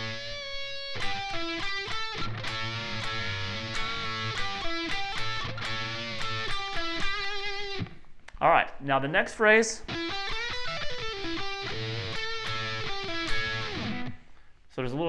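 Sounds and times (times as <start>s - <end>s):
electric guitar blues lead: 0.0s - 8.2s, 9.8s - 14.5s.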